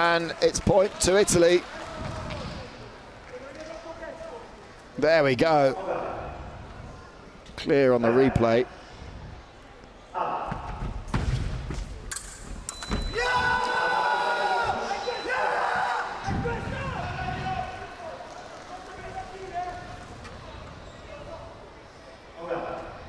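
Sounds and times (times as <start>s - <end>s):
quiet voices in hall: 0.0s - 23.0s
sharp thuds in sports hall: 10.3s - 13.5s
loud drawn-out shout: 13.1s - 18.0s.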